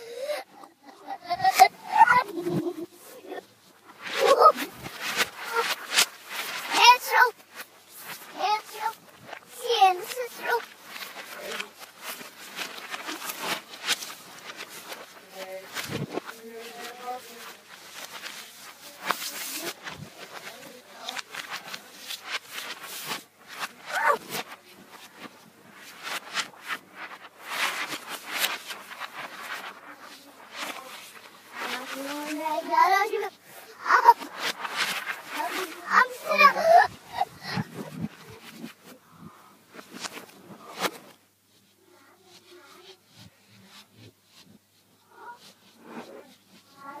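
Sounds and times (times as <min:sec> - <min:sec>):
girls' voices played backwards: 0:00.0 - 0:39.6, 0:41.8 - 0:43.7, 0:45.0 - 0:47.0
rustles: 0:00.1 - 0:47.0.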